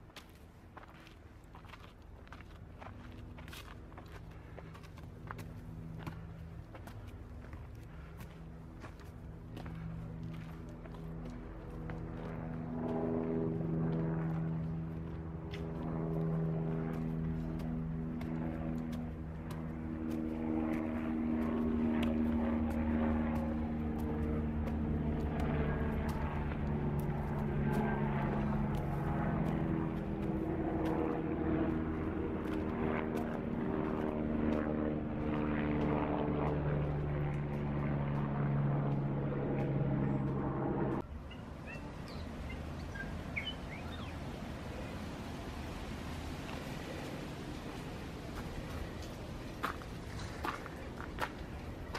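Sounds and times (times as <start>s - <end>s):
faint outdoor background: 0.0s - 51.9s
propeller aircraft engine droning: 0.0s - 51.9s.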